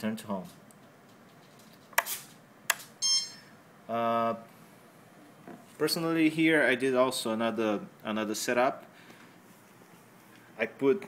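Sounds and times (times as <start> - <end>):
short high electronic beep: 3.0 - 3.6.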